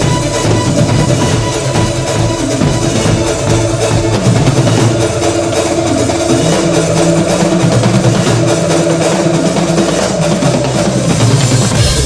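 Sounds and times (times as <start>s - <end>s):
drum kit played live: 0.0s - 12.0s
electronic dance backing track: 0.0s - 12.0s.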